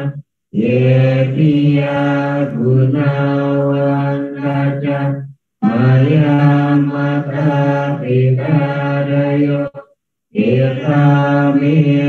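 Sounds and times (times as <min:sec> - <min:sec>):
monotone chanting: 0:00.0 - 0:12.0.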